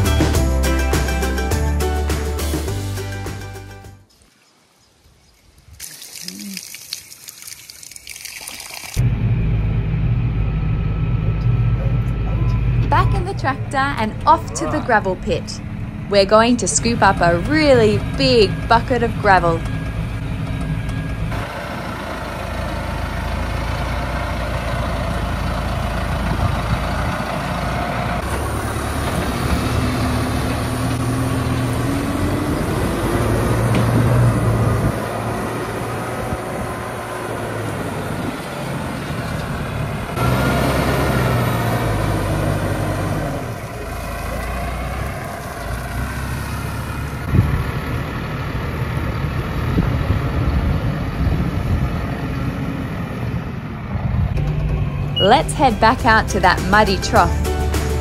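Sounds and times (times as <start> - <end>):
tractor diesel engine revving: 9.0 - 58.0.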